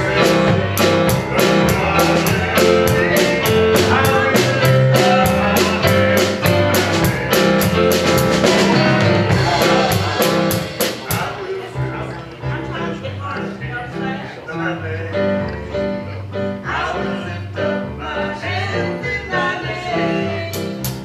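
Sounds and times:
keyboard drums and bass: 0.0s - 12.2s
man singing: 0.0s - 21.0s.

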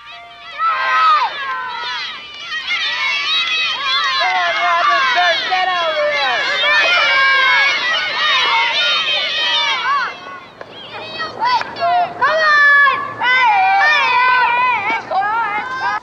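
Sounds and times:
children shouting at play: 0.0s - 16.0s.

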